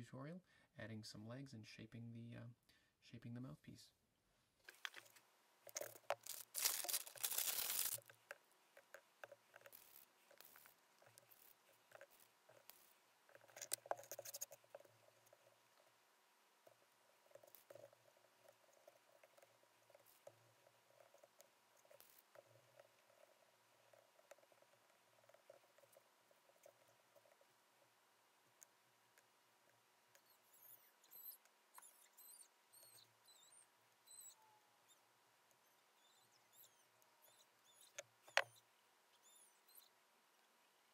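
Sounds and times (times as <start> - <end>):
hands working clay: 4.6 - 15.8
small taps and scrapes: 4.6 - 15.9, 16.6 - 27.5, 37.7 - 38.6
faint high squeaks: 30.1 - 40.0.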